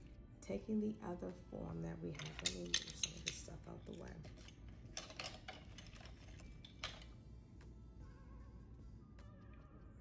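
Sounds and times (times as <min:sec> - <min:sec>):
small items clinking on tabletop: 0:02.1 - 0:07.1.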